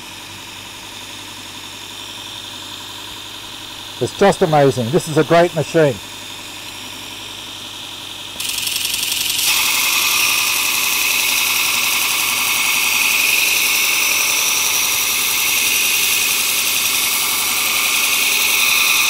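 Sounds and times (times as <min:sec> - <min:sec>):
motor running: 0:03.5 - 0:19.0
belt sharpener grinding hiss: 0:08.4 - 0:19.0.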